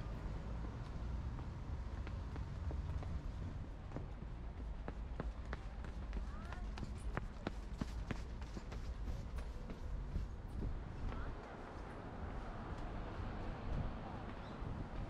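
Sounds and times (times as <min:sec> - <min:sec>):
low street rumble: 0:00.0 - 0:15.0.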